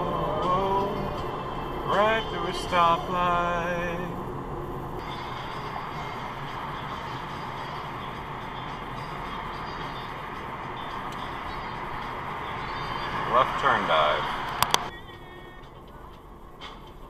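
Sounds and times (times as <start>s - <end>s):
road and engine noise in car: 0.0s - 17.0s.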